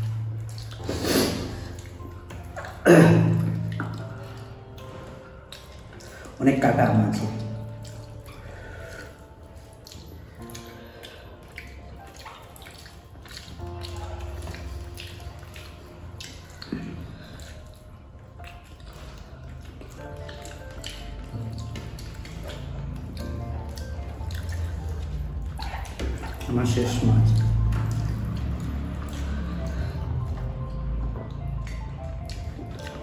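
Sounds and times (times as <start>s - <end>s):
chewing: 0.0s - 33.0s
fingers mixing rice wetly: 0.0s - 33.0s
background music with bass line: 13.1s - 33.0s.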